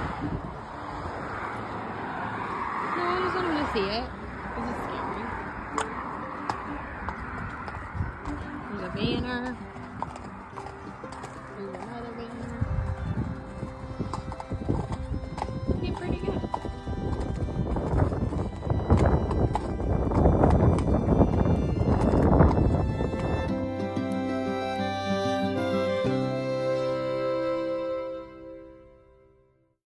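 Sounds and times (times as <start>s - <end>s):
traffic rumble: 0.0s - 29.5s
horse hooves clip-clopping: 3.2s - 28.0s.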